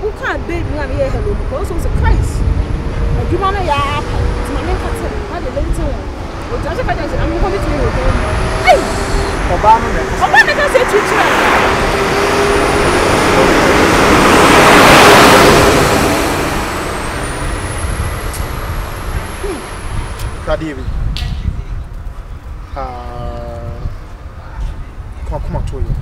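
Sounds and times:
vehicle passing by: 0.0 - 25.4.

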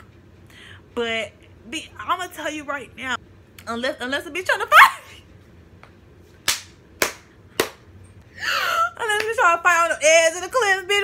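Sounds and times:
sharp hand smacks: 5.8 - 7.8.

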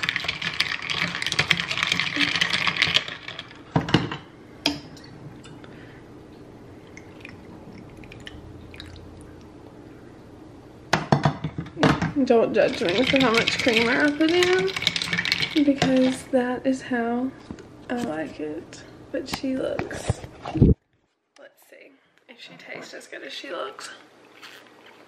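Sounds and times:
ice cubes clinking in a glass: 0.0 - 3.6, 12.6 - 16.2.

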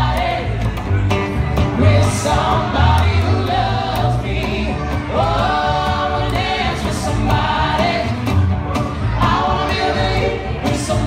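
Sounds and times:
bass guitar line: 0.0 - 11.0
guitar: 0.0 - 11.0.

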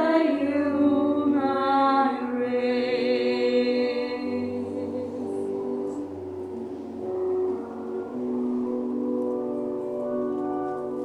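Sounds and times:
church music on keyboard: 0.0 - 11.0.

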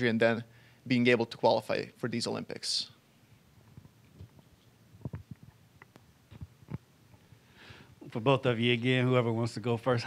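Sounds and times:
microphone handling thumps and clicks: 3.6 - 7.2.

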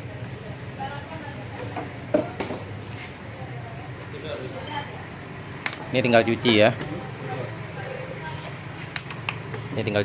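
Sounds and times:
low workshop hum: 0.0 - 10.0.

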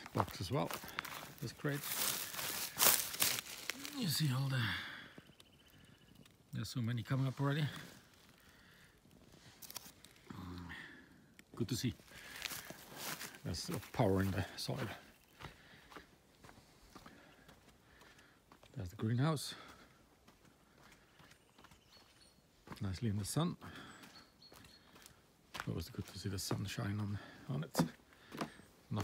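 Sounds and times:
faint footsteps: 0.0 - 4.2, 11.5 - 18.8, 19.6 - 23.0, 23.6 - 29.0
soft crackles: 0.0 - 15.7.

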